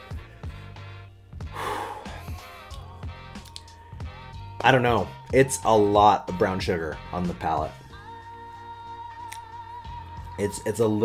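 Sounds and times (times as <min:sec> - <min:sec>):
background music with low beat: 0:00.0 - 0:11.0
man blowing out a sharp breath: 0:01.4 - 0:02.8.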